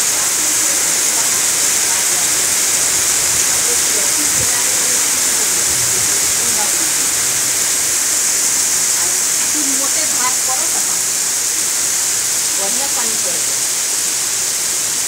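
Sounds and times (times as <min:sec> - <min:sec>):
heavy rain pouring onto water: 0:00.0 - 0:15.0.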